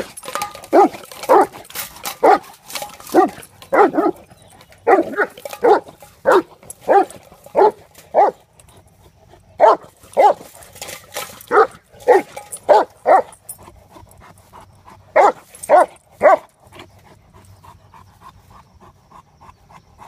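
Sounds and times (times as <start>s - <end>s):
dog barking: 0.7s - 1.6s, 2.2s - 2.5s, 3.1s - 4.2s, 4.8s - 8.4s, 9.6s - 10.5s, 11.5s - 13.4s, 15.2s - 16.5s
dog panting: 2.1s - 12.5s, 13.1s - 20.0s.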